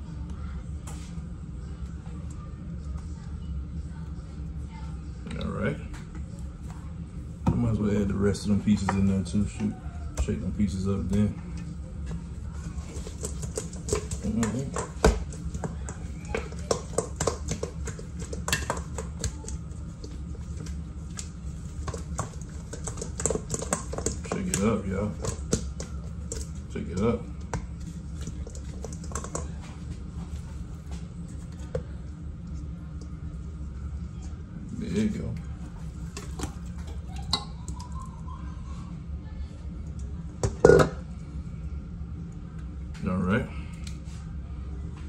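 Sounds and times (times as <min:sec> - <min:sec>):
low hum: 0:00.0 - 0:45.0
meat clattering in metal bowl: 0:12.8 - 0:29.6, 0:40.4 - 0:41.0.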